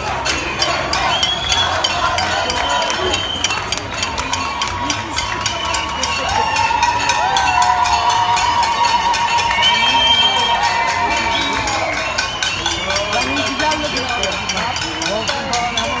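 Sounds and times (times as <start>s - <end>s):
crowd chanting: 0.0s - 6.1s.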